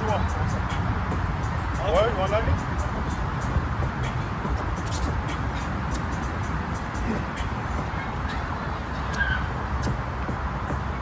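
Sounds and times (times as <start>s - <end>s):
outdoor rumble and hiss: 0.0s - 11.0s.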